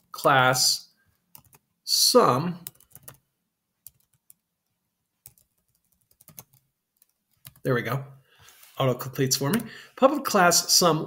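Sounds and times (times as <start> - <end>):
computer keyboard keystrokes: 1.3 - 1.6, 2.6 - 3.2, 3.8 - 4.4, 5.2 - 7.6.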